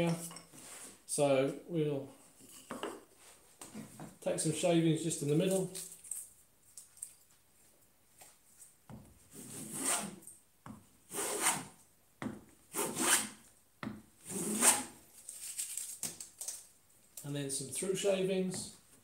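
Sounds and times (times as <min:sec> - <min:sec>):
bench plane cutting wood: 0:09.4 - 0:10.2, 0:11.1 - 0:11.7, 0:12.7 - 0:13.4, 0:14.2 - 0:14.9.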